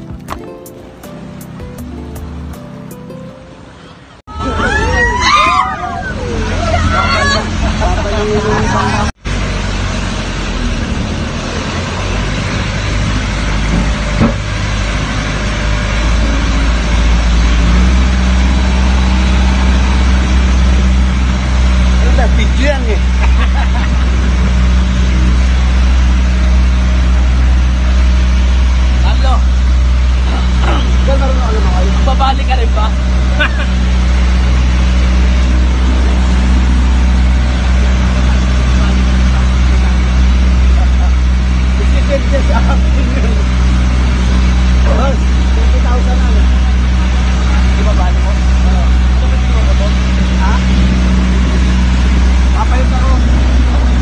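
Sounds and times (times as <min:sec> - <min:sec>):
boat engine drone: 0:00.0 - 0:54.0.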